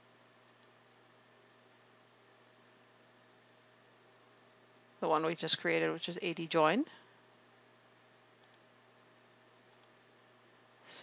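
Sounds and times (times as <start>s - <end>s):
low room hum: 0.0s - 11.0s
computer mouse clicks: 0.4s - 0.8s, 8.4s - 8.7s, 9.7s - 10.0s.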